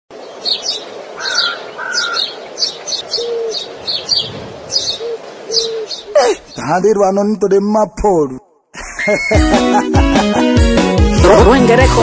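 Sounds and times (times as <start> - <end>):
bird chirping: 0.1 - 6.9.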